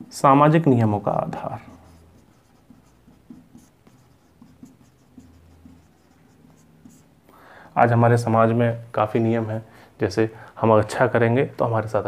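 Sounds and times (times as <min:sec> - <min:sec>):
marker pen writing on whiteboard: 0:01.1 - 0:07.2.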